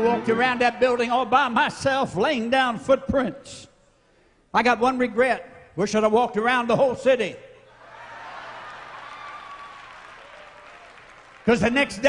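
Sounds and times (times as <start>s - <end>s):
congregation applauding: 7.8s - 12.0s.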